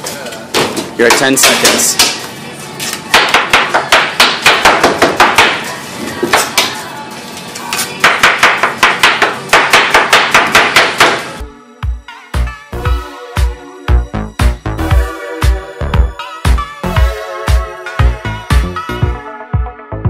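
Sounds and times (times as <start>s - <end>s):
music with a beat: 11.4s - 20.0s.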